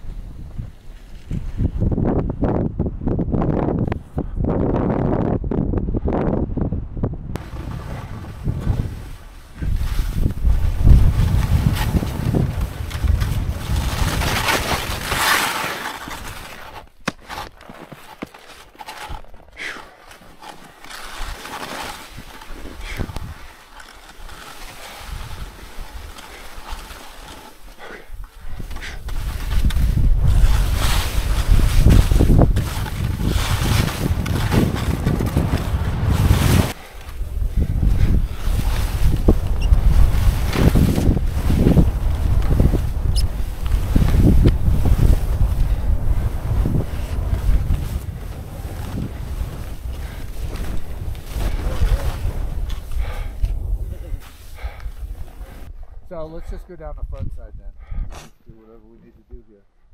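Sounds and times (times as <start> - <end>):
wind buffeting microphone: 0.0 - 15.2, 28.1 - 58.1
skis scraping over snow: 7.4 - 55.7.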